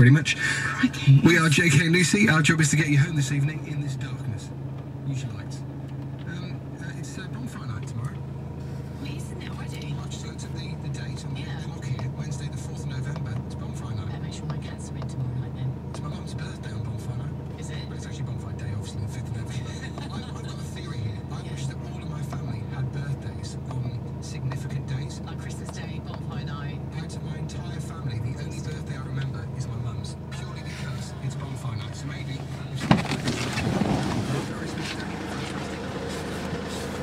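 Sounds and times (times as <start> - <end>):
diesel engine idling: 0.0 - 37.0.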